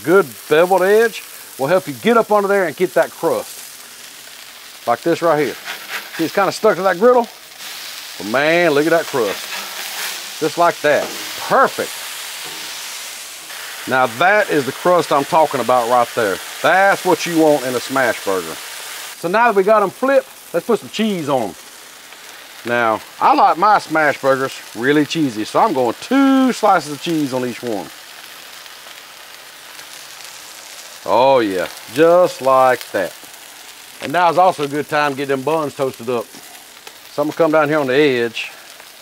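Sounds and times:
food sizzling on a griddle: 0.0s - 39.0s.

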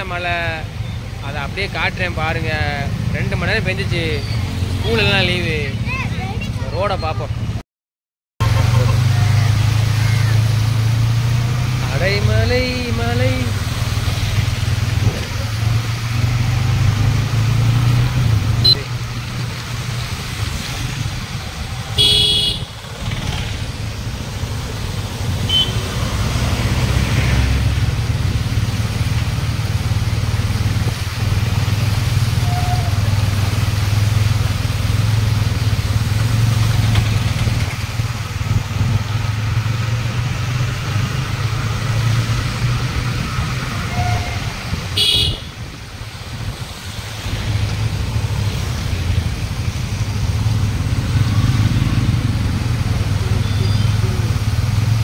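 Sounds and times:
motorcycle engine running: 21.1s - 26.0s
vehicle horn beep: 22.0s - 22.7s, 25.5s - 25.8s, 43.9s - 45.5s.

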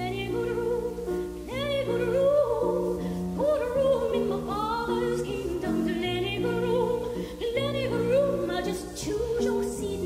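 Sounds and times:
operatic soprano singing: 0.0s - 10.0s
piano chords: 0.0s - 10.0s.

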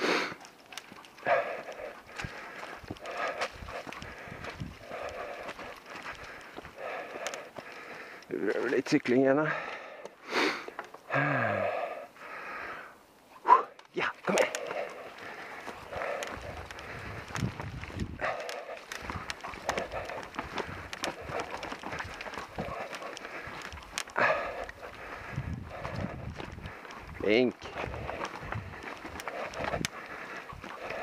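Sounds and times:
mountain bike rattling over trail: 14.2s - 31.0s.

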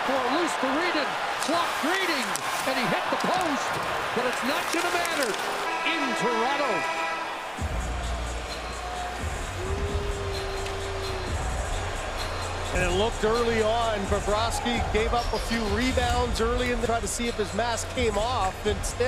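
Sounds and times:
crowd raised voices: 0.0s - 12.7s
game horn: 5.6s - 7.5s
music with heavy bass: 7.6s - 14.3s.

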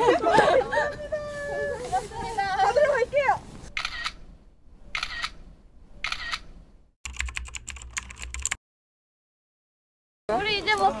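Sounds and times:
camera shutter clicks: 3.8s - 4.2s, 4.9s - 5.4s, 6.0s - 6.5s.

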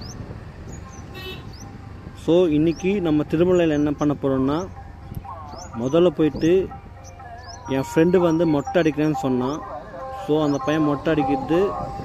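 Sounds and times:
engine road and wind rumble: 0.0s - 12.0s.

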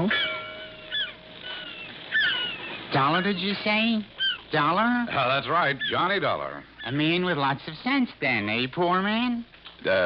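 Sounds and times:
short high bird cries: 0.1s - 3.6s, 4.2s - 4.5s.

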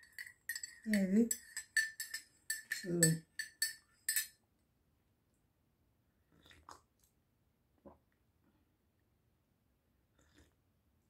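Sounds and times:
metal spoon clinking ceramic mug: 0.0s - 4.4s.

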